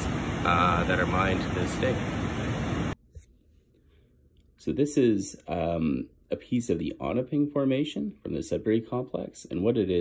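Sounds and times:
rushing outdoor background noise: 0.0s - 3.0s.

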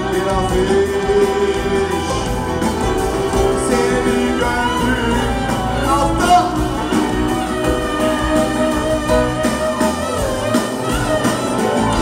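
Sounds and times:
drums: 0.0s - 12.0s
live band playing: 0.0s - 12.0s
clarinet solo: 4.4s - 12.0s.

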